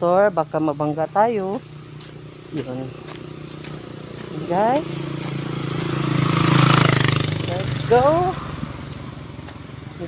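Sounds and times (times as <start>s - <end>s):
motorcycle passing by: 0.0s - 10.0s.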